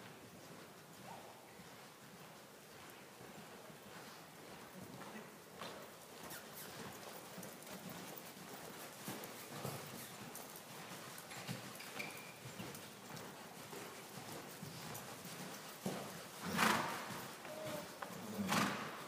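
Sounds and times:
horse hoofbeats on sand: 0:00.0 - 0:19.0.

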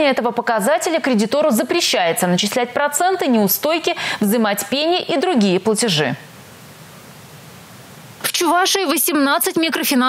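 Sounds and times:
woman speaking: 0:00.0 - 0:06.3, 0:08.2 - 0:10.0
steady background hiss: 0:00.0 - 0:10.0.

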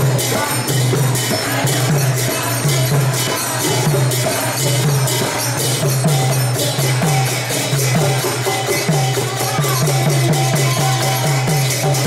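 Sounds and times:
small hand cymbals ringing: 0:00.0 - 0:12.0
woman singing into a microphone: 0:09.2 - 0:11.6.

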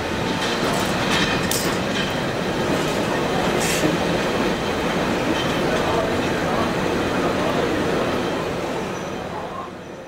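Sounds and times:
train running on rails: 0:00.0 - 0:10.0.

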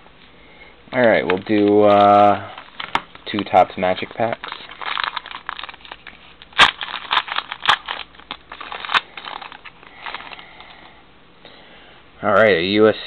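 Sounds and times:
wrapper tearing and crinkling: 0:01.0 - 0:10.7.

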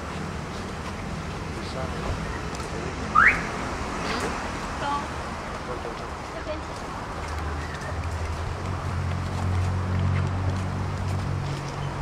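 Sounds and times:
car alarm chirp: 0:03.1 - 0:03.5.

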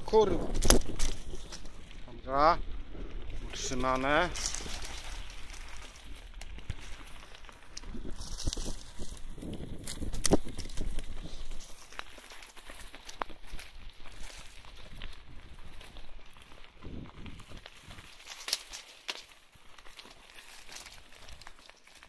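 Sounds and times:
bicycle tyres rolling over leaves: 0:00.0 - 0:22.0.

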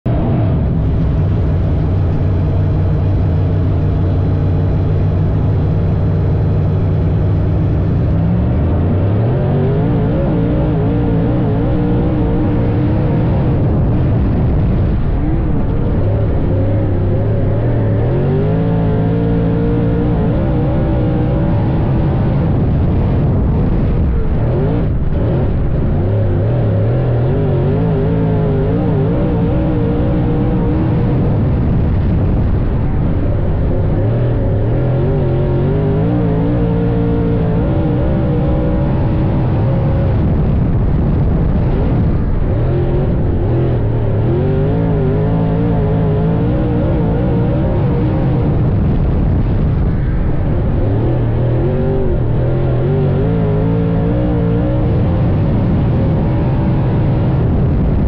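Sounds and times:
race car engine revving: 0:00.1 - 0:58.0.

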